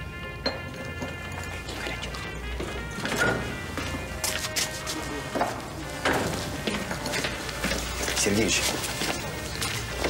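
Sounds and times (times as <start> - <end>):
soft background music: 0.0 - 10.0
crockery and cutlery clinking: 0.4 - 4.0.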